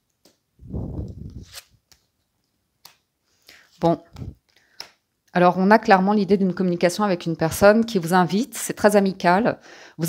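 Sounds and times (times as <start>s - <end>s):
card rustling: 1.0s - 2.1s
cards clicking and tapping: 2.8s - 3.1s, 4.4s - 5.0s.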